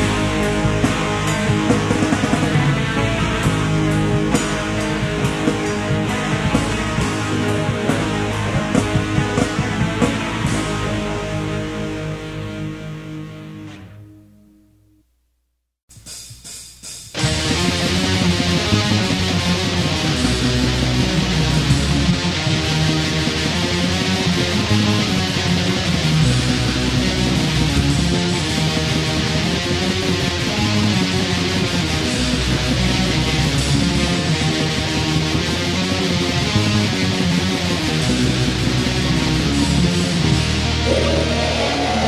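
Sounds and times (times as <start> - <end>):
distorted electric guitar riff: 0.0 - 14.2, 17.2 - 42.0.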